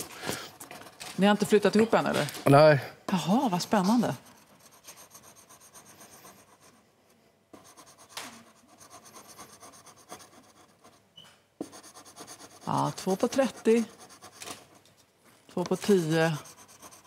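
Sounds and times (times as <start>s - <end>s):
scraper scratching a card: 3.9s - 6.7s, 11.7s - 14.8s, 15.7s - 17.0s.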